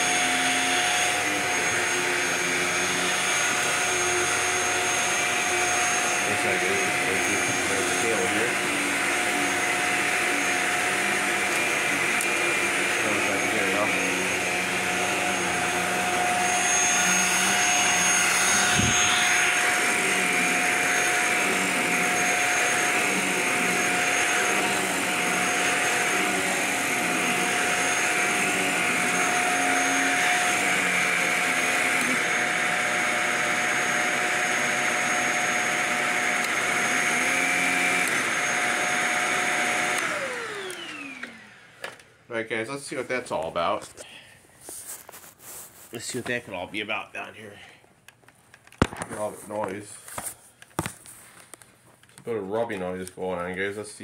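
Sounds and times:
vacuum motor winding down: 0.0s - 42.1s
vacuum cleaner whining: 0.0s - 47.4s.

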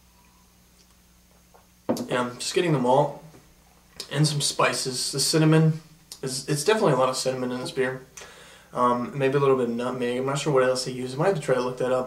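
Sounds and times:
faint low hum: 0.0s - 12.0s
man's voice: 8.8s - 12.0s.

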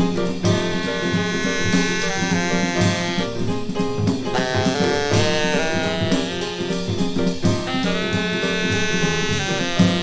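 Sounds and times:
piano bass and drums: 0.0s - 10.0s
tenor saxophone: 0.4s - 10.0s.

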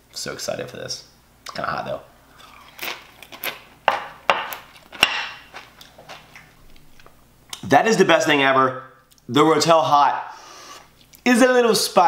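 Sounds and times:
chip crunching: 2.3s - 7.2s.

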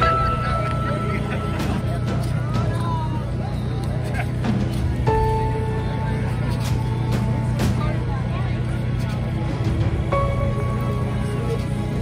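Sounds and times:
engine rumble: 0.0s - 12.0s
music: 0.0s - 12.0s
people talking: 0.0s - 12.0s.

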